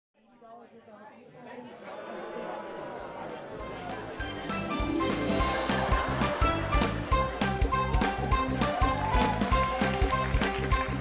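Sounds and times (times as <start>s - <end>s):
indistinct chatter of voices: 0.2s - 6.7s.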